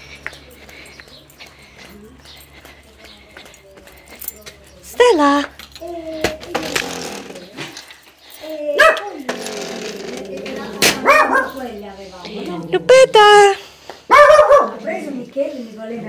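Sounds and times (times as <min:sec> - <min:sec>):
dog barking: 0:08.8 - 0:09.2, 0:10.9 - 0:11.6, 0:14.1 - 0:15.0.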